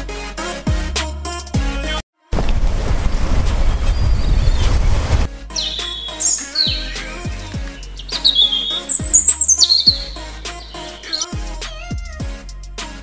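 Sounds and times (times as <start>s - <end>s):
deep falling bass beat: 5.3s - 11.5s
high bird chirps: 5.6s - 11.4s.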